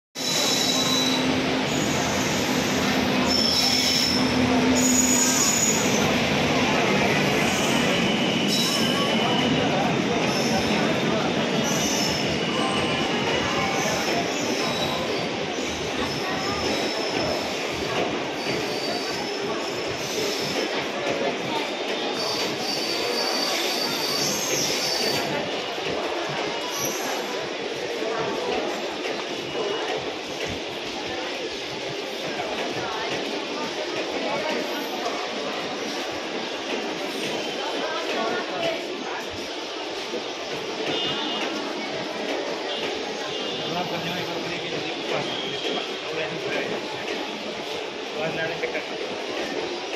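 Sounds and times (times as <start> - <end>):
wheel squeal: 0.2 - 6.2, 7.4 - 9.6, 11.6 - 17.7, 18.4 - 20.7, 22.2 - 25.4
train rumbling on rails: 0.2 - 49.9.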